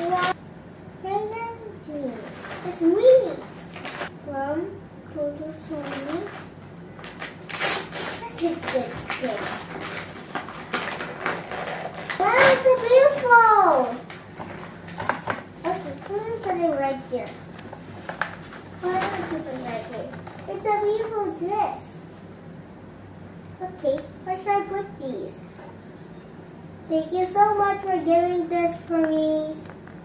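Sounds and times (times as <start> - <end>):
girl's voice: 0.0 - 0.4, 1.0 - 3.5, 4.2 - 6.4, 8.2 - 9.6, 12.2 - 14.1, 15.6 - 17.4, 18.8 - 22.0, 23.6 - 25.4, 26.9 - 29.7
wrapping paper crackling and tearing: 5.7 - 15.0, 18.0 - 20.8.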